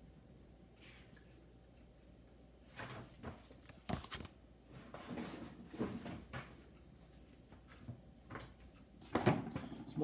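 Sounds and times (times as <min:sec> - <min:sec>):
rustling and scraping in a box: 0:03.8 - 0:06.3.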